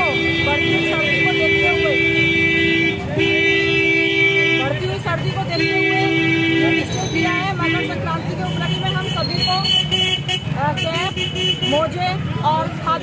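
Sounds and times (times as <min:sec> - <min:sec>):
vehicle horns honking: 0:00.0 - 0:12.0.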